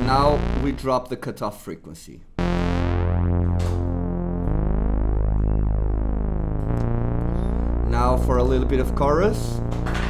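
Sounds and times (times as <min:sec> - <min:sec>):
dark synthesizer bass notes: 0:00.0 - 0:01.2, 0:02.4 - 0:10.0.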